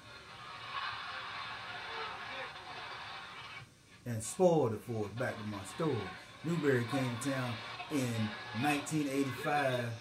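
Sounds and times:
crowd noise from tv speaker: 4.2 - 10.0.

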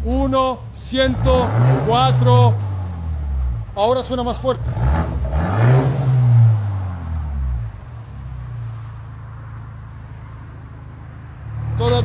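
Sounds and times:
car engine revving and idling: 0.0 - 12.0.

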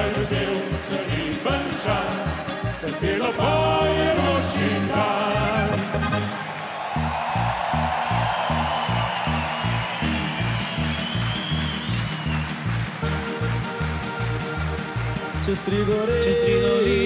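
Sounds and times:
folk band playing: 0.0 - 6.4, 10.8 - 17.0
audience applause: 0.0 - 17.0
double bass plucking: 12.8 - 17.0.

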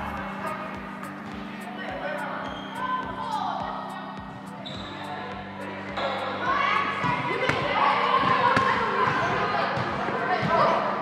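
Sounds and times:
volleyball hits and bounces: 6.9 - 10.8.

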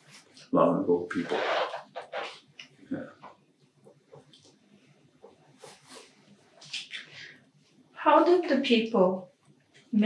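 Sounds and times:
mouth noises: 0.5 - 3.3, 6.6 - 7.2.

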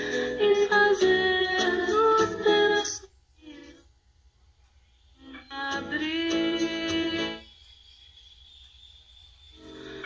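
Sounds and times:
music from a radio: 0.0 - 4.0, 4.6 - 8.8, 9.6 - 10.0.

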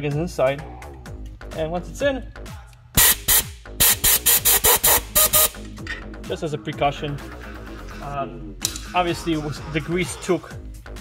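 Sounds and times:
compressed air blasts: 3.0 - 5.6.

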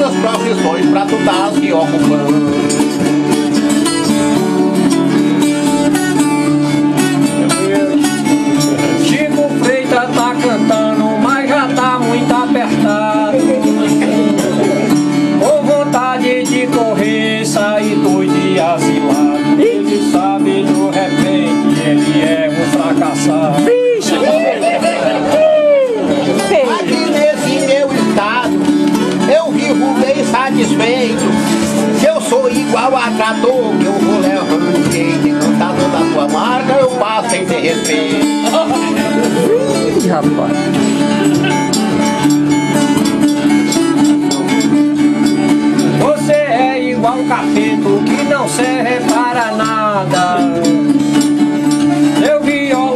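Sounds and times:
violas strummed: 0.0 - 52.9.

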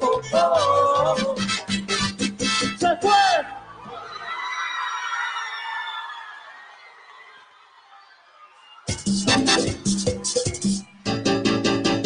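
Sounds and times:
drums and accompaniment: 1.1 - 2.9, 8.9 - 12.0.

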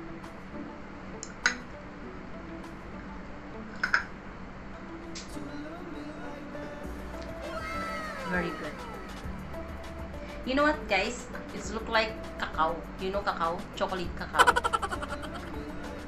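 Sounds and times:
soft background music: 0.0 - 16.0.

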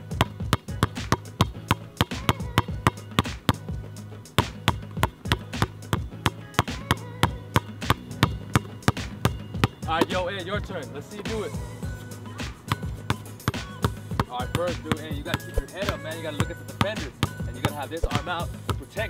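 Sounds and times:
basketball bouncing on asphalt: 0.0 - 10.6, 11.3 - 19.0
background music with bass: 0.0 - 19.0.

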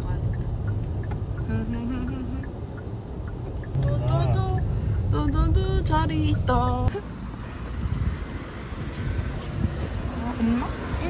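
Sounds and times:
street traffic noise: 0.0 - 11.0
wind rumbling on microphone: 3.4 - 11.0.

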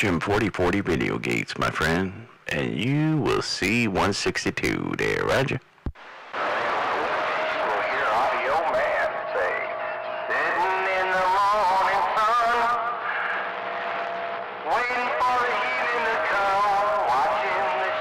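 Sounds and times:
voice over cb radio speaker: 0.0 - 5.6, 6.4 - 13.9, 14.6 - 18.0
steady radio tone: 6.0 - 18.0.

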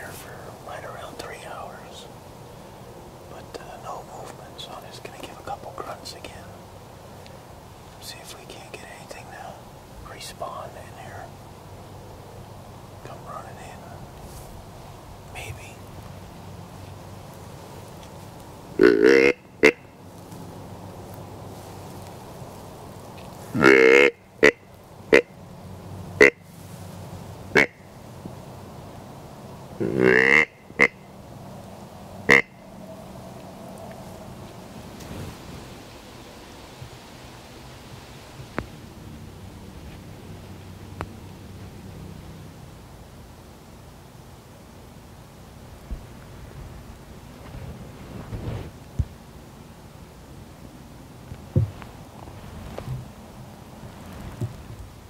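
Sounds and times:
faint woodland background: 0.0 - 55.0
deer grunt call blown: 18.8 - 19.8, 23.5 - 25.3, 29.8 - 30.9.

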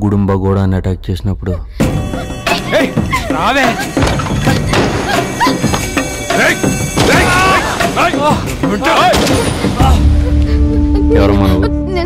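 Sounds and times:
background music: 0.1 - 12.0.

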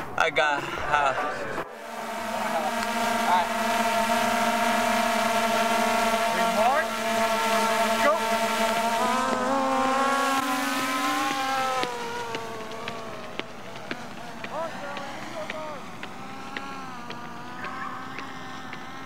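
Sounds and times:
quadcopter drone buzzing: 0.0 - 19.0.

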